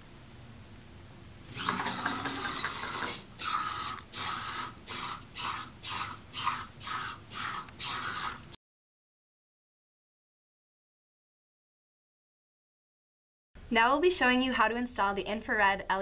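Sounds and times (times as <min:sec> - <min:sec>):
robot servo motors whining: 0:01.5 - 0:08.5.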